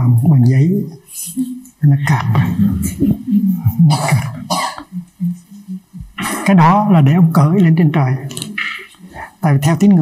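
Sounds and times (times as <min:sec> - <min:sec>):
person coughing: 0:03.7 - 0:05.1.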